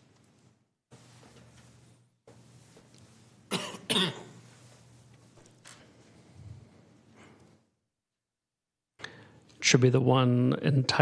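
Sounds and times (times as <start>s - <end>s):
person coughing: 3.5s - 4.4s.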